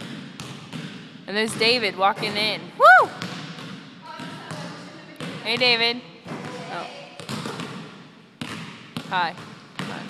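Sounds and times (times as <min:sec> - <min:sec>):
basketball bouncing on hardwood floor: 0:00.0 - 0:02.6, 0:03.2 - 0:10.0.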